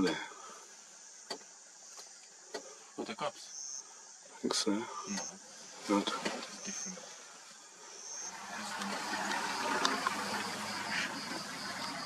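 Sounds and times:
insects humming: 0:00.0 - 0:12.0.

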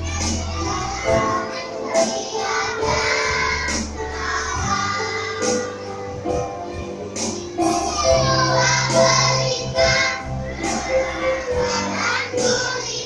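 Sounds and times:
children singing together: 0:00.0 - 0:13.0
instrumental backing music: 0:00.0 - 0:13.0.

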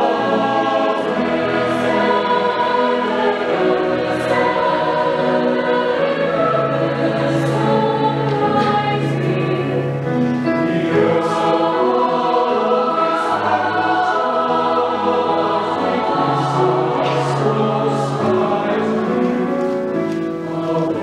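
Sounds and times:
choir singing a lullaby: 0:00.0 - 0:21.0.

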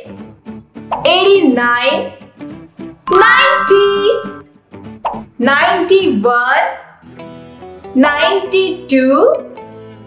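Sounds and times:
bright chime: 0:03.1 - 0:04.4.

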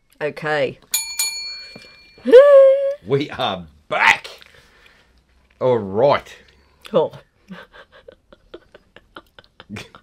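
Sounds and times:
bell-like ding: 0:00.9 - 0:02.3.

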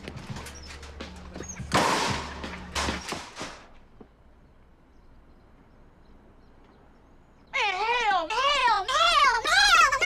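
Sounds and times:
loud sudden bangs: 0:01.7 - 0:03.6.

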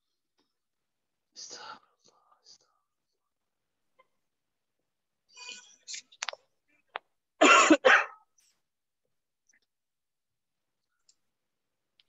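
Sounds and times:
person coughing: 0:07.4 - 0:08.2.

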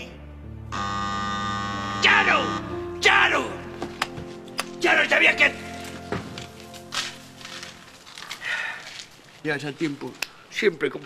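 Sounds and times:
doorbell buzzer: 0:00.7 - 0:02.7.

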